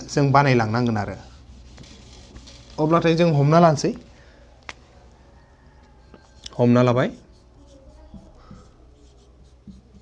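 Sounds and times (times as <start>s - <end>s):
marker writing on whiteboard: 5.8s - 10.0s.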